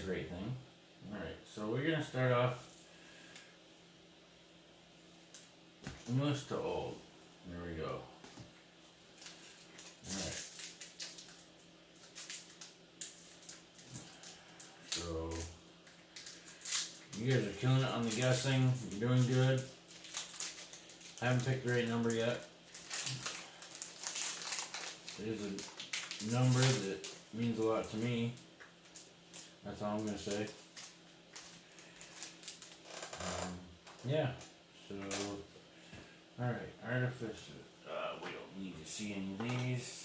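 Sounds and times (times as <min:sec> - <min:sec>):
foil wrapper crinkling and tearing: 0:09.2 - 0:15.4, 0:16.0 - 0:28.3, 0:28.9 - 0:33.4.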